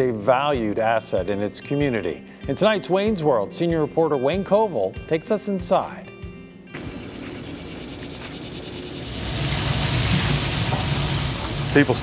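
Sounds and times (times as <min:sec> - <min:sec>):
background music: 0:00.0 - 0:08.3.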